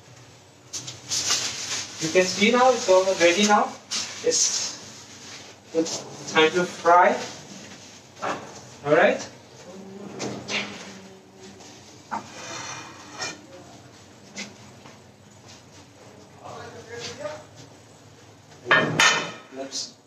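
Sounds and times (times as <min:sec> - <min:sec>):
dishes and utensils clinking: 0:12.1 - 0:13.4.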